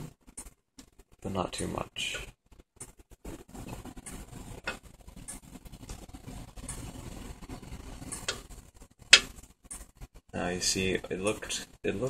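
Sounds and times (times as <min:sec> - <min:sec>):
gas burner flame rumbling: 0:00.0 - 0:12.0
metal tongs ticking on burner: 0:08.1 - 0:08.5.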